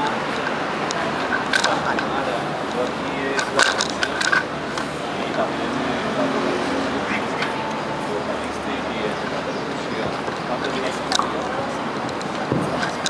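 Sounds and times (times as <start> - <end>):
indistinct voices: 0.0 - 13.0
steady background noise: 0.0 - 13.0.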